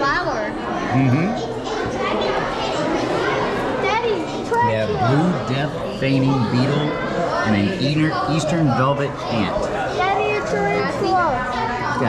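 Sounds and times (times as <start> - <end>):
visitors chattering: 0.0 - 12.0.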